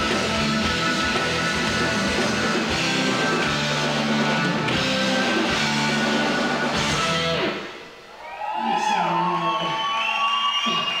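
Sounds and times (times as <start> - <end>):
electric guitar bending notes: 0.0 - 7.8
live rock band: 0.0 - 8.0.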